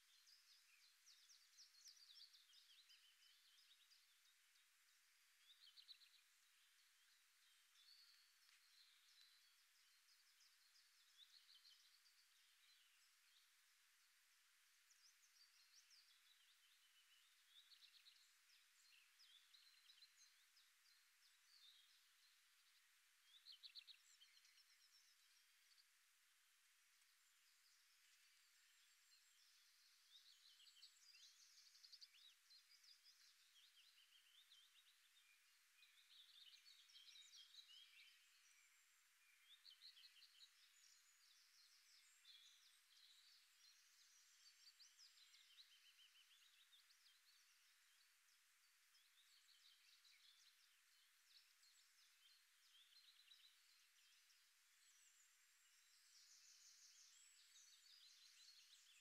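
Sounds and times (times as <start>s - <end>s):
faint birdsong chirps: 0.0s - 59.0s
soft hiss: 0.0s - 59.0s.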